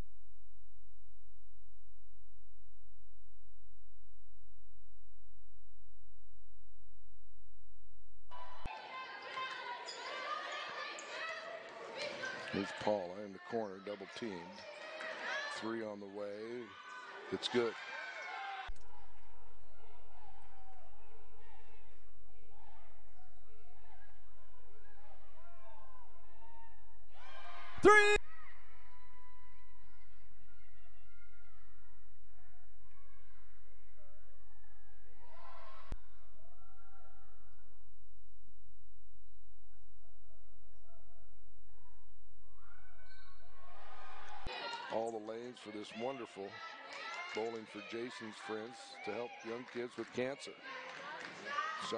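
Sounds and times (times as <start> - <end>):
distant gymnasium sounds: 8.3 - 37.7, 40.8 - 51.9
crowd and player voices: 8.4 - 32.0, 43.0 - 51.9.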